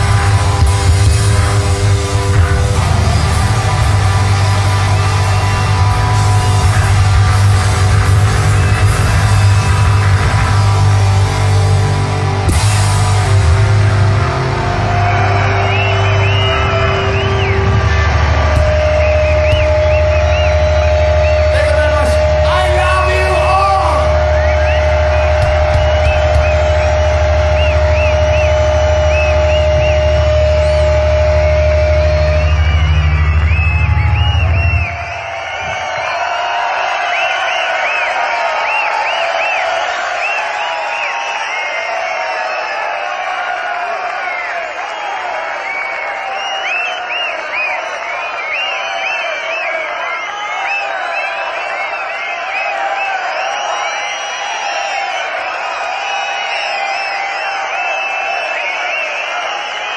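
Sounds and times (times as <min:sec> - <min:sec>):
rock band holding final chord: 0:00.0 - 0:34.8
crowd cheering and whistling: 0:00.0 - 0:59.9.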